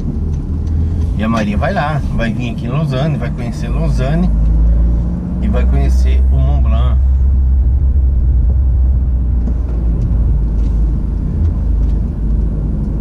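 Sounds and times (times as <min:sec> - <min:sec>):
vehicle engine and road rumble: 0:00.0 - 0:13.0.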